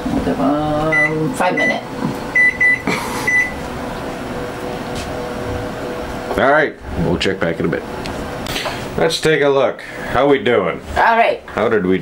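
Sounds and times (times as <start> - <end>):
kitchen appliance humming: 0.0 - 12.0.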